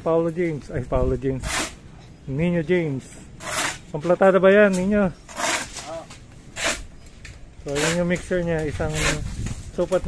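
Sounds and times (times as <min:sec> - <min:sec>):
shovel scraping concrete floor: 0:01.4 - 0:01.8, 0:03.4 - 0:04.0, 0:04.7 - 0:06.9, 0:07.7 - 0:09.5.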